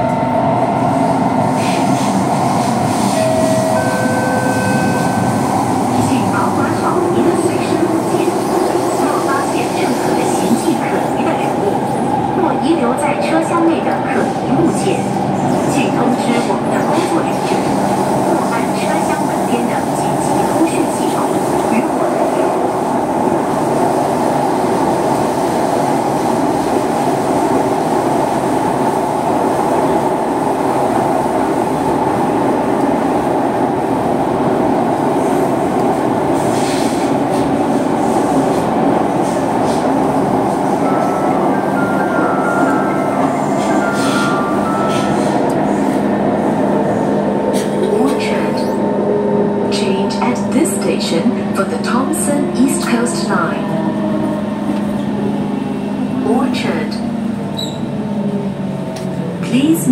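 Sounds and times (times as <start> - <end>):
metro train rumbling in tunnel: 0.0 - 59.9.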